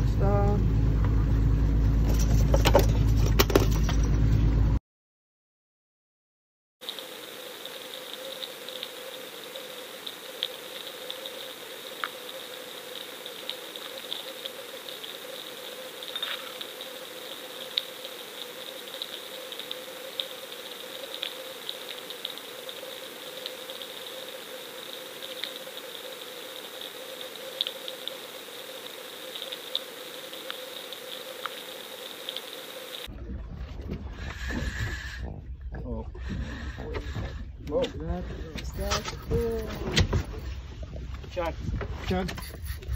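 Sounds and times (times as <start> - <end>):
low rumble: 0.0 - 4.8, 33.1 - 42.1
underwater hum and hiss: 6.8 - 33.1, 33.8 - 41.1
faint clicks: 10.0 - 11.4.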